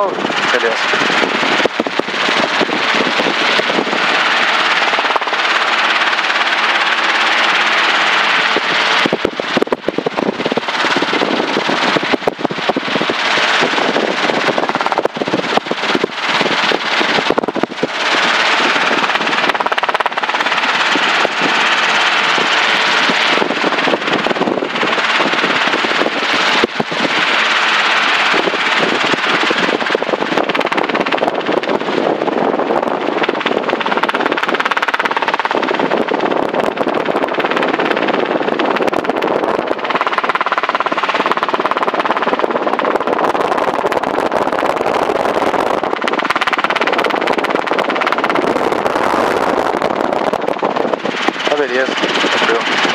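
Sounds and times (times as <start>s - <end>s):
helicopter engine and rotor noise: 0.0s - 52.9s
rotor blades chopping: 0.0s - 52.9s.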